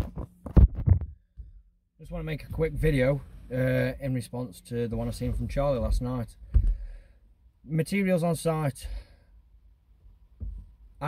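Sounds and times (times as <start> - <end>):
phone handling thumps: 6.5 - 6.8, 10.4 - 10.7.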